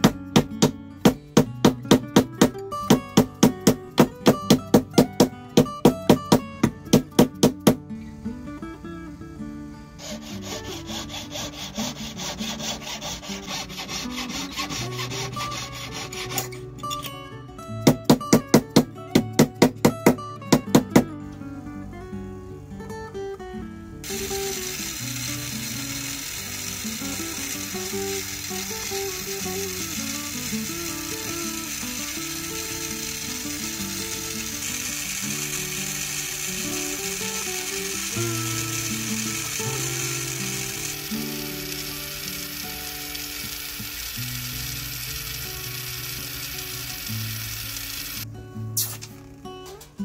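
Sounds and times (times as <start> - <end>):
gas torch flame hissing: 8.0 - 16.4, 24.0 - 48.2, 48.8 - 49.2.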